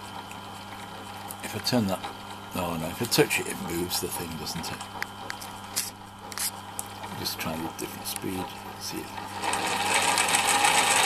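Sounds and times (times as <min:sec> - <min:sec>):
drill motor humming: 0:07.5 - 0:11.0.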